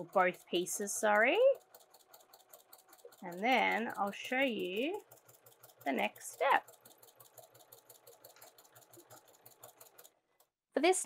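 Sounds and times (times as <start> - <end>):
sewing machine stitching: 0.0 - 10.6.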